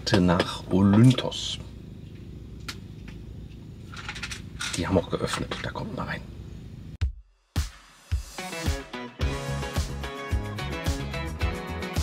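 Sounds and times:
van engine idling: 0:00.0 - 0:07.0.

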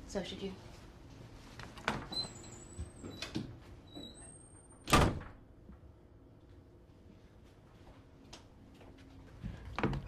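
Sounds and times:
door shutting with a bang: 0:04.9 - 0:05.4.

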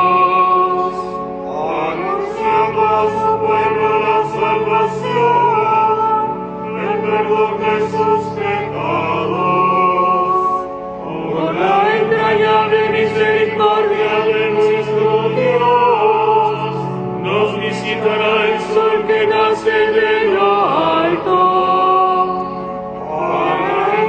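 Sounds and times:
chanted liturgical singing: 0:00.0 - 0:24.0.

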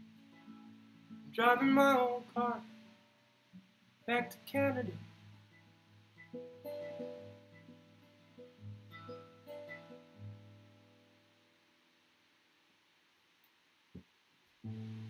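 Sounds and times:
acoustic guitar plucked notes: 0:00.0 - 0:11.2.

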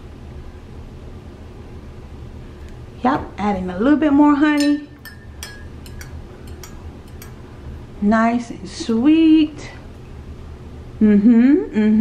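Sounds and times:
metal spoon clinking glass mug: 0:04.6 - 0:07.4.

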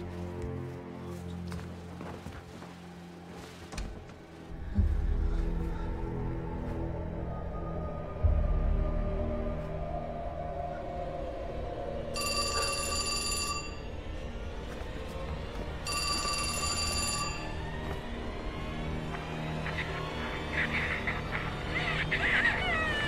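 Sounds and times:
tense low background music: 0:00.0 - 0:23.0
telephone ringing: 0:12.2 - 0:13.9, 0:15.8 - 0:17.6.

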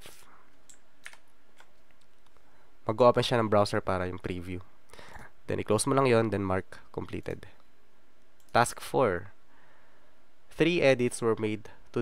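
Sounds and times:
low hiss: 0:00.0 - 0:12.0
computer mouse clicks: 0:00.5 - 0:02.4.

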